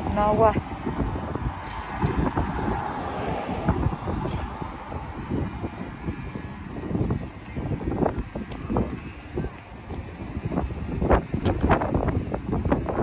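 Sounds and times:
car traffic passing: 0.0 - 13.0
wind buffeting microphone: 0.0 - 13.0.

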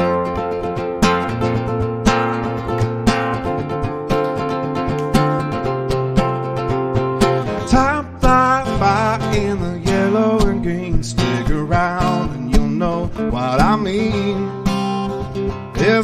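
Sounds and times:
acoustic guitar strummed chords: 0.0 - 16.0
sliding wavering guitar melody: 0.0 - 16.0.

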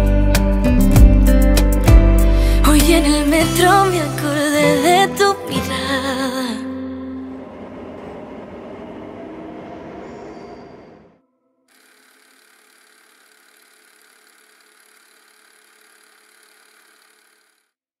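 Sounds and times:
metro train rushing past: 6.2 - 11.2.

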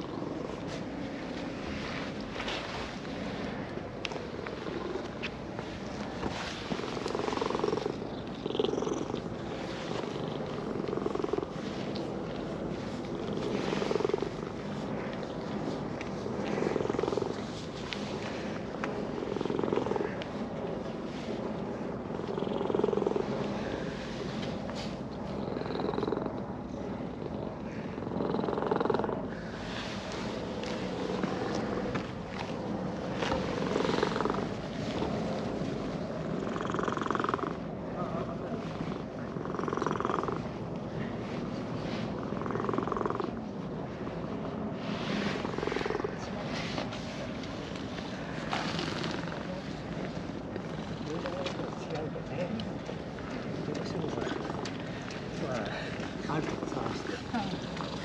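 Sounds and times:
cat purring: 0.0 - 15.8, 16.4 - 20.2, 22.0 - 24.0, 24.8 - 29.6, 30.2 - 35.0, 36.1 - 37.7, 38.6 - 40.6, 41.9 - 43.4, 45.2 - 46.6, 53.2 - 54.9.

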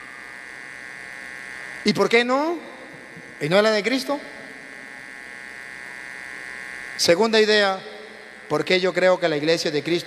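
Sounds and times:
electrical buzz: 0.0 - 10.0
speech: 1.9 - 2.6, 3.4 - 4.3, 7.0 - 7.8, 8.5 - 10.0.

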